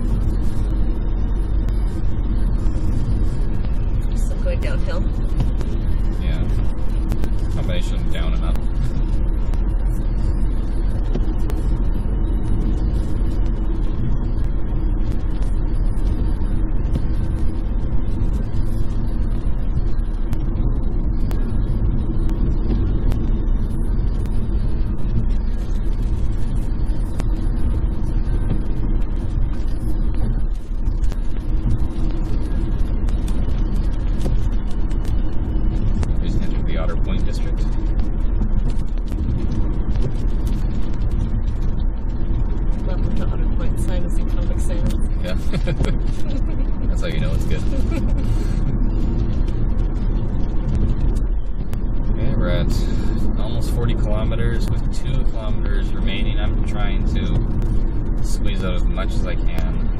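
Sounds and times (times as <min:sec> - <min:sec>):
heater fan running: 0:00.0 - 0:59.9
road and tyre noise: 0:00.0 - 0:59.9.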